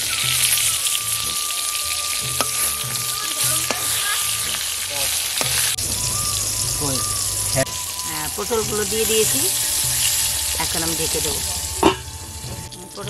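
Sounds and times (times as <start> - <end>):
slices frying in hot oil: 0.0 - 13.0.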